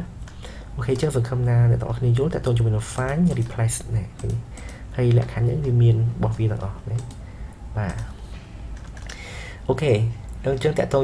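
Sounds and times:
computer keys or mouse clicking: 3.0s - 5.5s, 6.2s - 7.2s, 7.8s - 8.1s, 8.7s - 9.3s.

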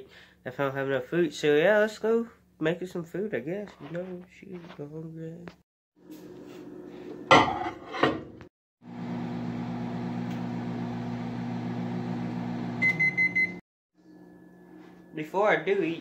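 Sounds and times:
microwave oven humming: 8.8s - 15.3s
microwave beeping: 9.4s - 13.6s.

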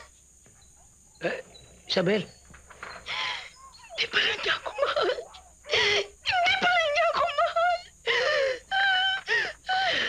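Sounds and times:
woman sobbing and wailing: 3.1s - 10.0s.

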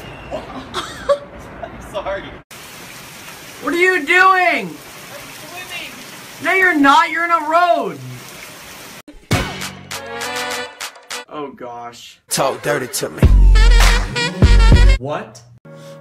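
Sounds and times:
heavy rain on a street: 2.5s - 9.0s
person calling out: 3.6s - 8.2s.

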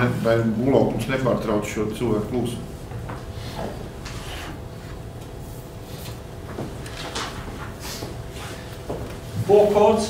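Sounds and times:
steady low hum: 0.0s - 10.0s
person speaking: 9.4s - 10.0s.

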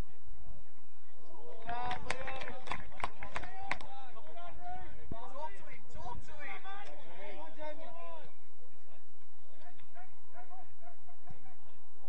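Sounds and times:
steady outdoor rumble: 0.0s - 12.0s.

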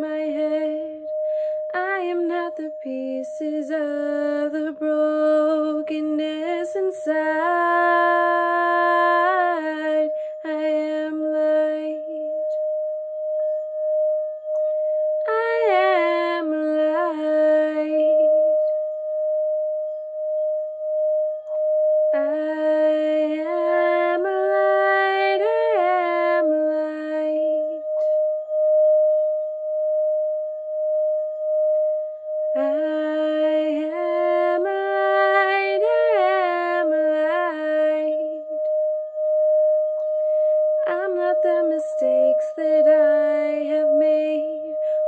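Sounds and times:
singing bowl ringing: 0.0s - 45.0s
woman singing a note: 22.2s - 28.2s, 32.6s - 38.7s, 40.8s - 45.0s.

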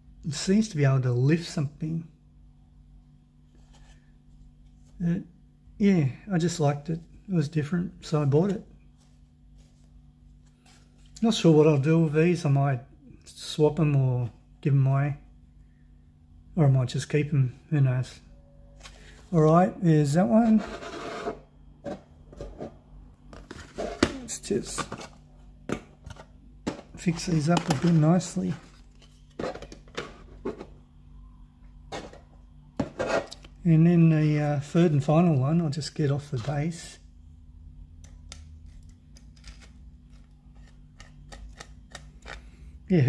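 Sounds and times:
faint steady low hum: 0.0s - 43.0s
handling plastic base: 21.8s - 30.8s.

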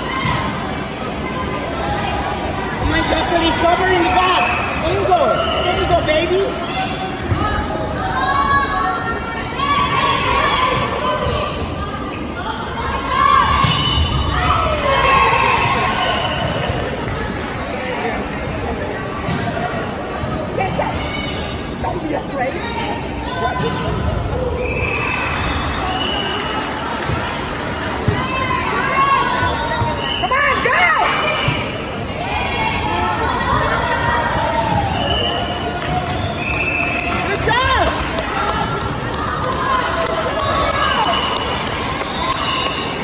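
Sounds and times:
people chattering and calling out: 0.0s - 43.0s.

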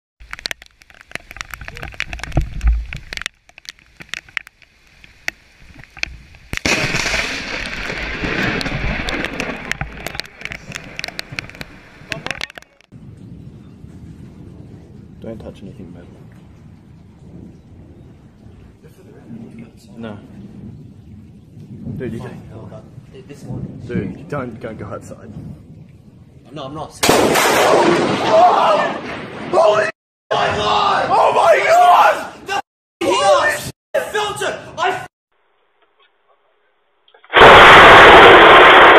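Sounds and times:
lightning crack: 6.5s - 13.4s, 21.6s - 25.8s, 26.4s - 29.9s, 37.2s - 38.9s
crackling rolling thunder: 6.5s - 31.2s, 37.3s - 38.9s
excited shouting: 28.3s - 35.1s.

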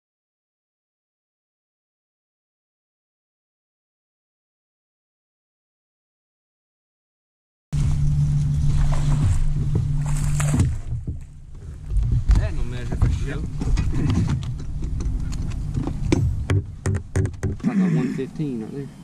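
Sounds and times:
low motor hum: 7.8s - 18.4s
sharp knocks: 15.8s - 17.7s.

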